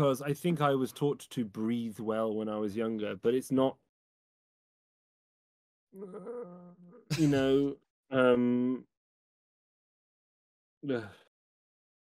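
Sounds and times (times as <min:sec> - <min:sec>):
man saying um: 0:07.1 - 0:08.8, 0:10.9 - 0:11.2.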